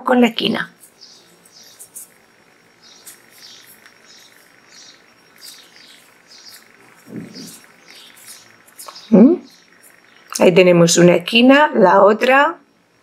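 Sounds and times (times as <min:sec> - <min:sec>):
high-pitched bird chirps: 0:00.8 - 0:10.5.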